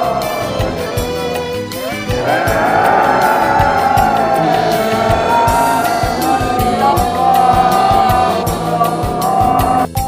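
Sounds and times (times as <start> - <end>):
choir-like singing: 0.0 - 10.0
steady beat: 2.5 - 9.9.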